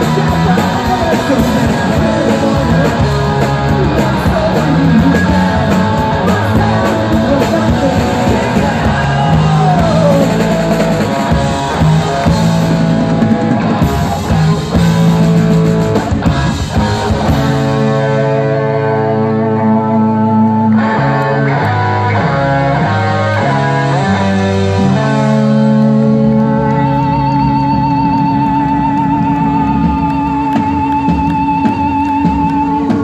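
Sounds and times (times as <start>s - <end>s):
bass guitar: 0.0s - 33.0s
drums: 0.0s - 33.0s
electric guitars: 0.0s - 33.0s.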